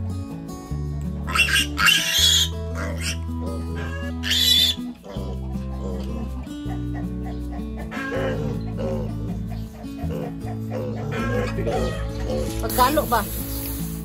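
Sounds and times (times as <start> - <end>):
music with steady bass line: 0.0 - 14.0
piglet squealing: 1.3 - 12.7.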